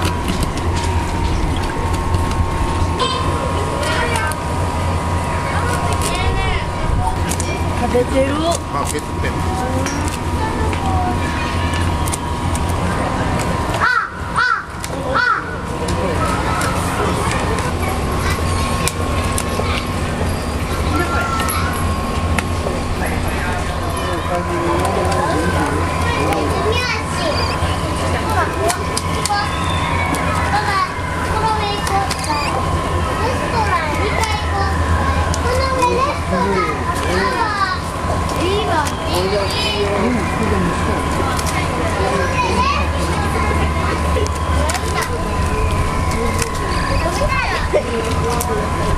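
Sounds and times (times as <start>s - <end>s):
children chattering: 0.0s - 48.9s
steady low hum: 0.0s - 48.9s
crow cawing: 13.8s - 15.6s.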